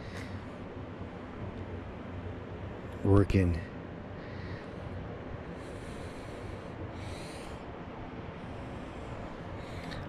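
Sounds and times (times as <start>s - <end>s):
soft breaths close to microphone: 0.0s - 1.4s, 3.7s - 10.0s
outdoor background noise: 0.0s - 10.0s.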